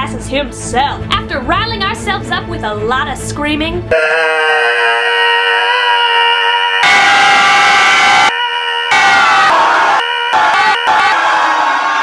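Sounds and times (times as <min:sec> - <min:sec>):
group screaming together: 0:03.9 - 0:12.0
woman screaming: 0:03.9 - 0:12.0.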